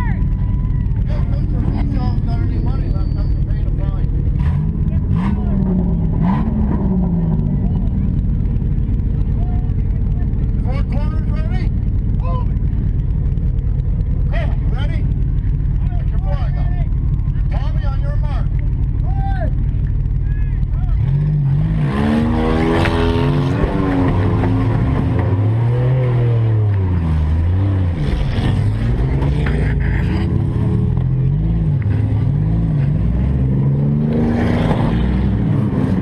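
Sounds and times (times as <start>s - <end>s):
car engine idling and revving: 0.0s - 36.0s.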